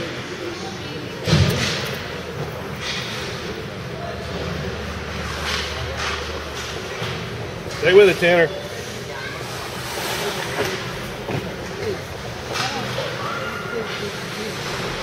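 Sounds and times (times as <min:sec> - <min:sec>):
arena noise: 0:00.0 - 0:15.0.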